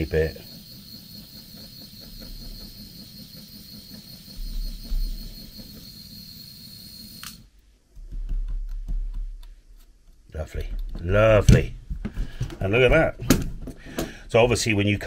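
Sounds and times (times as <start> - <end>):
low bump: 0.0 - 6.3
handling noise: 0.0 - 6.4, 7.0 - 14.2
gas torch hissing and whistling: 0.0 - 7.4.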